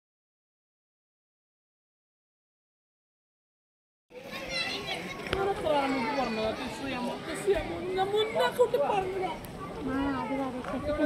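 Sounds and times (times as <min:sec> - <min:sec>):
people talking and calling out: 0:04.1 - 0:11.0.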